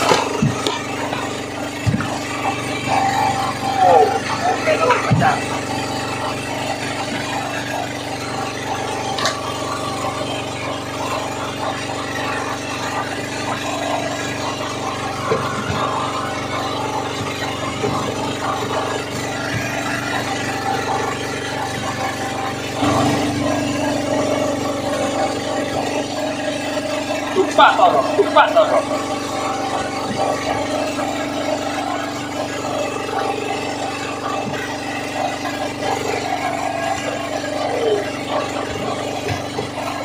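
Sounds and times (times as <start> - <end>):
engine humming steadily: 0.0 - 40.0.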